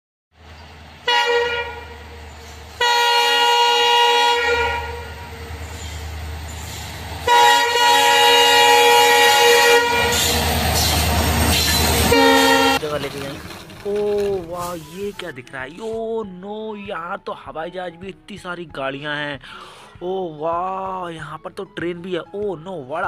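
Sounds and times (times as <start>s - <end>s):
electronic toy train horn: 1.0s - 2.2s, 2.8s - 5.6s, 7.2s - 10.5s, 11.6s - 12.9s
rushing noise: 4.8s - 15.2s.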